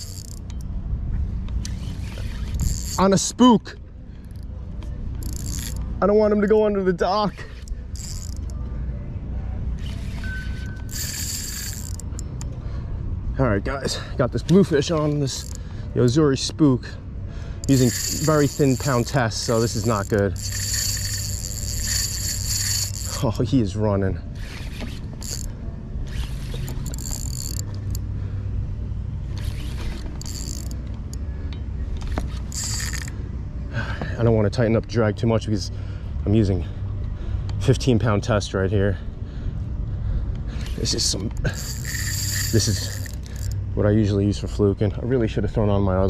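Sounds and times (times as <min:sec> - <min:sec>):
spinning reel ratcheting: 0:00.0 - 0:00.6, 0:01.6 - 0:03.3, 0:05.2 - 0:05.9, 0:07.3 - 0:08.6, 0:09.8 - 0:12.4, 0:14.9 - 0:15.6, 0:17.6 - 0:23.4, 0:24.4 - 0:28.0, 0:29.3 - 0:31.2, 0:32.0 - 0:33.2, 0:40.6 - 0:43.6
steady low rumble: 0:00.0 - 0:46.0.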